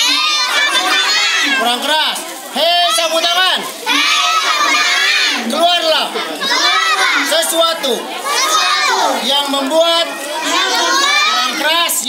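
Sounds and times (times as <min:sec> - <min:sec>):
children shouting a chant: 0:00.0 - 0:01.9, 0:02.5 - 0:11.8.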